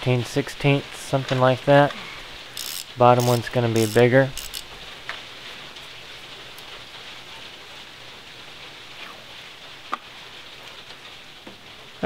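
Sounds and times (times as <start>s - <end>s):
steady low hiss: 0.0s - 12.0s
nut clicking: 2.6s - 4.7s.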